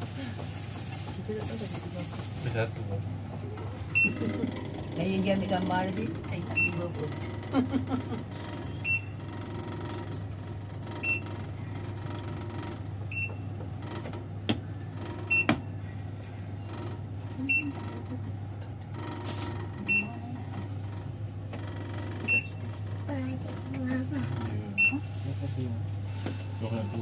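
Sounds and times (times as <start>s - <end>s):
elevator low hum: 0.0s - 27.0s.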